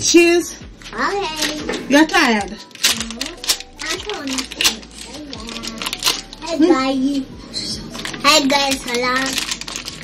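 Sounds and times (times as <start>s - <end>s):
child's voice: 1.0s - 1.8s, 2.9s - 7.3s, 8.2s - 9.6s
plastic packet clicks and crinkles: 2.5s - 6.5s, 8.0s - 10.0s.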